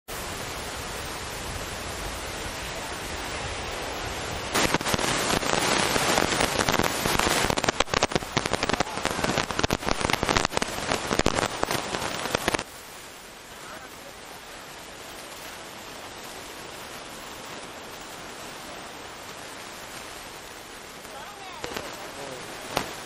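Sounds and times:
surf: 0:00.1 - 0:23.0
wind: 0:00.1 - 0:23.0
dense rapid crackling: 0:04.4 - 0:12.7, 0:19.1 - 0:23.0.

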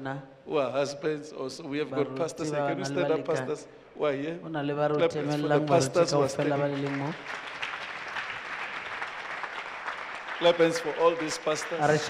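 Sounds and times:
congregation applauding: 0:05.3 - 0:12.0.

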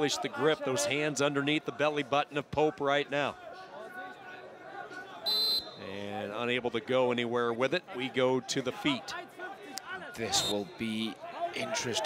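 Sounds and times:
referee's whistle blast: 0:05.2 - 0:05.9, 0:10.3 - 0:10.8.

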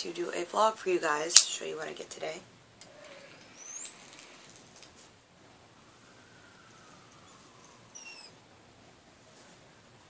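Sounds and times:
soft clicks and crackles: 0:02.8 - 0:05.2
thin high whistle: 0:07.0 - 0:08.4.

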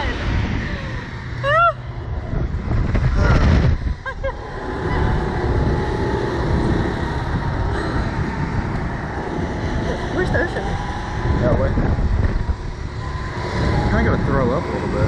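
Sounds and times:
wind buffeting microphone: 0:00.0 - 0:15.0
riders crying out: 0:03.0 - 0:15.0.

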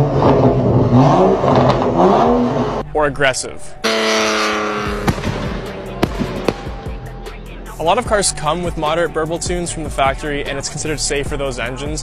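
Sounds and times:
car exhaust popping and banging: 0:00.0 - 0:02.8, 0:03.8 - 0:07.1
background music: 0:02.0 - 0:12.0.

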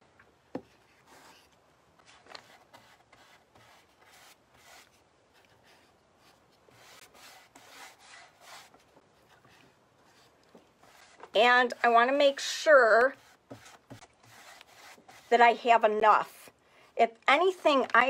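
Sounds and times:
paintbrush strokes on wood: 0:02.4 - 0:11.4, 0:12.3 - 0:15.6.

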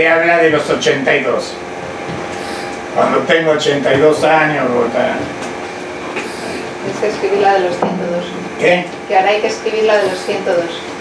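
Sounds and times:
air-conditioning hiss and rumble: 0:00.0 - 0:11.0.

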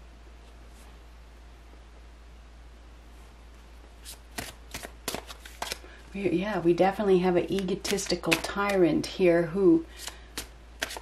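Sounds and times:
cards being shuffled: 0:04.0 - 0:06.0, 0:07.4 - 0:08.9, 0:09.9 - 0:11.0.

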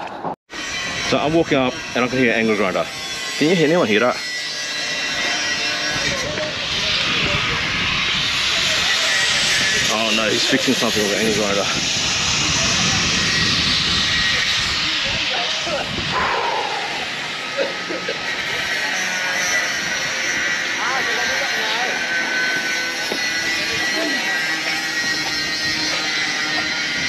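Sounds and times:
angle grinder whining: 0:00.6 - 0:27.0.

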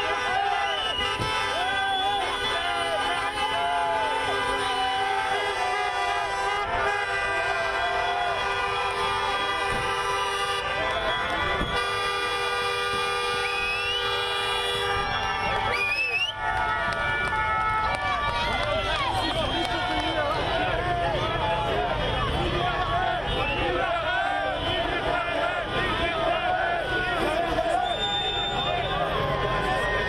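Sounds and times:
people shouting: 0:00.0 - 0:09.4, 0:15.0 - 0:30.0
car horns blasting: 0:00.0 - 0:15.3.

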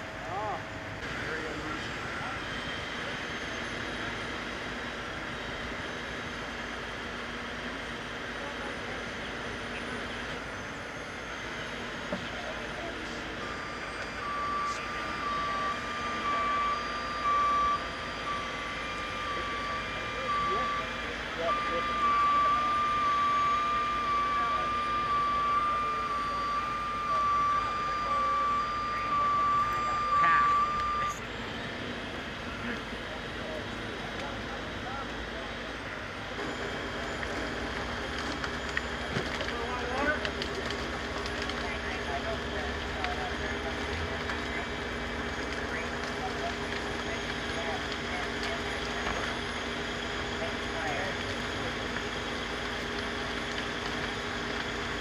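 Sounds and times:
steady engine hum: 0:00.0 - 0:55.0
truck backup alarm beeping: 0:00.0 - 0:55.0.

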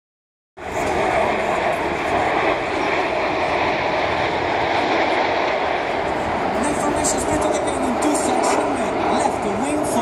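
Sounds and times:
steady loud roar: 0:00.6 - 0:10.0.

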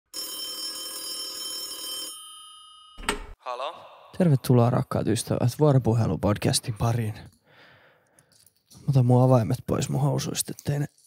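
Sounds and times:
telephone ringing: 0:00.1 - 0:03.4.

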